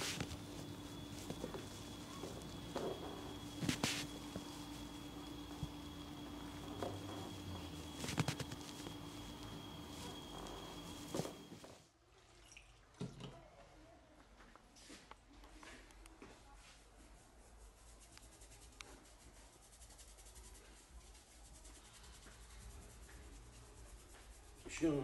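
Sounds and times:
electrical hum: 0.0 - 11.8
hands massaging handling sounds: 0.0 - 11.8.

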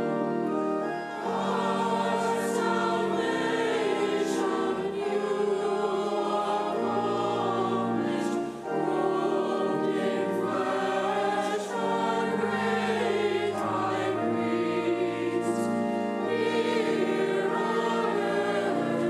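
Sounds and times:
choir singing a hymn: 0.0 - 19.0
organ accompaniment: 0.0 - 19.0.

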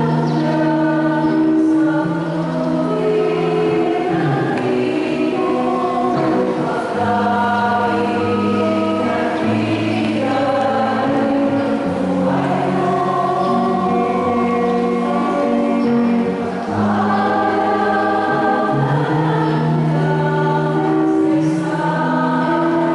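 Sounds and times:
choir singing a hymn: 0.0 - 22.9.

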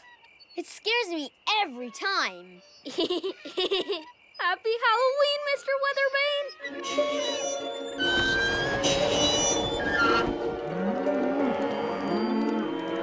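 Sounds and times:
background music: 6.4 - 13.0
cows mooing: 6.7 - 13.0.

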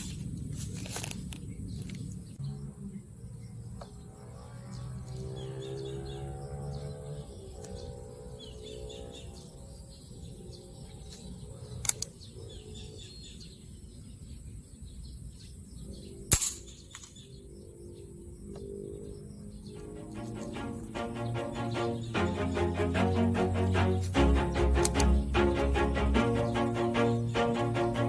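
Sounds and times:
air rifle shots: 16.3 - 17.1.

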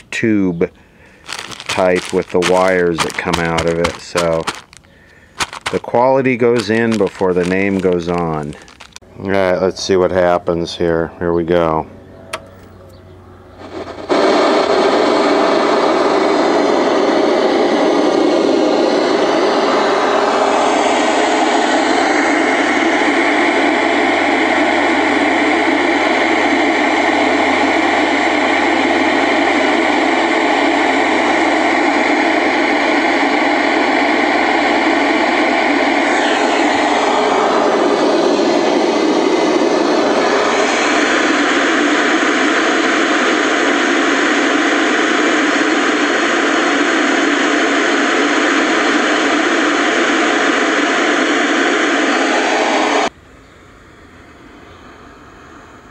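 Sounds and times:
tv static hiss: 1.3 - 4.8, 5.4 - 9.0, 19.7 - 53.1
low hum: 10.6 - 55.9.

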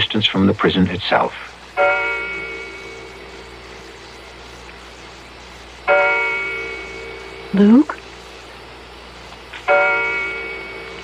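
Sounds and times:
clock bell chime striking: 9.7 - 10.9.

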